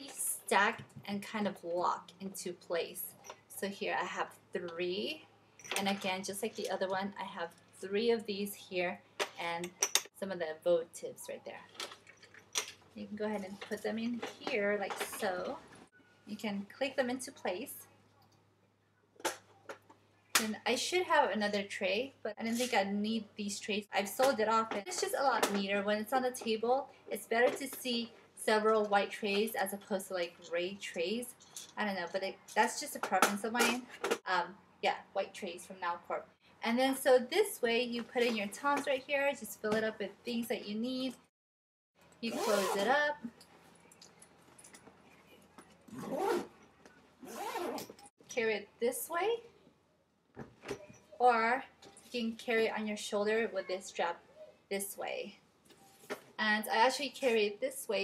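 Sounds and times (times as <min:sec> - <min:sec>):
bag zipper being pulled shut: 0:42.3 - 0:43.0, 0:45.9 - 0:46.6, 0:47.2 - 0:48.1.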